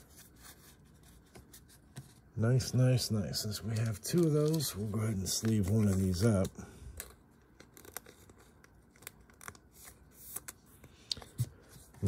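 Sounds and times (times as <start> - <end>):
paper cards being shuffled: 3.6 - 12.0.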